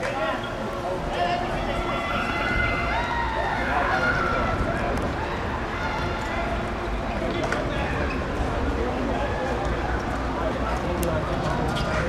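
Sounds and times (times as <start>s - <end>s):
players shouting: 0.1s - 7.0s.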